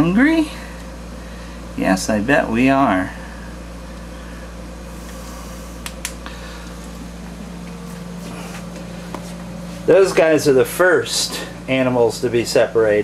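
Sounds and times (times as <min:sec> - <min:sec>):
low machinery hum: 0:00.0 - 0:13.0.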